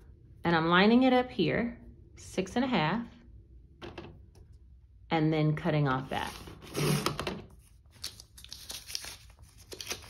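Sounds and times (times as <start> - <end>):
paper trimmer slicing paper: 6.6 - 7.2
paper rustling and crinkling: 6.7 - 10.0.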